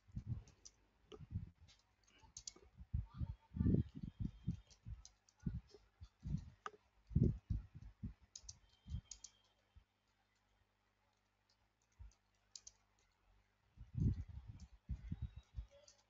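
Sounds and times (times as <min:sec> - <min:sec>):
typing on computer keyboard: 0:01.7 - 0:02.6, 0:04.3 - 0:06.4, 0:08.3 - 0:09.6, 0:11.5 - 0:13.2, 0:14.0 - 0:16.0.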